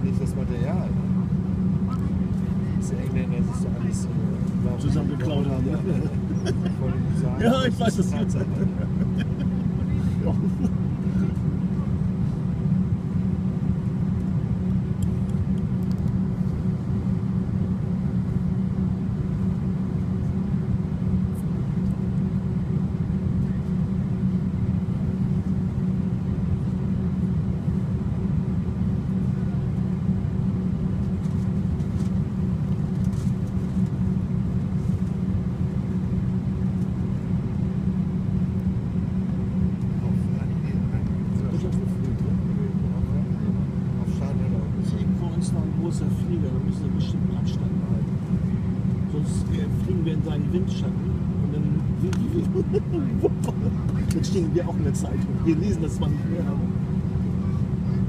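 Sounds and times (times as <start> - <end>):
cabin air system hum: 0.0 - 58.0
jet engines at low power: 0.0 - 58.0.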